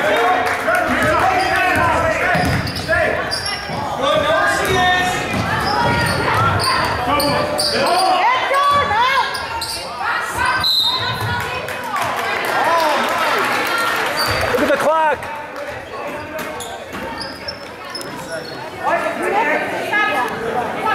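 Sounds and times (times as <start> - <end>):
people talking and shouting: 0.0 - 20.9
sneakers squeaking: 0.9 - 11.4, 14.1 - 14.6, 15.8 - 18.9
basketball bouncing on hardwood: 1.8 - 2.7.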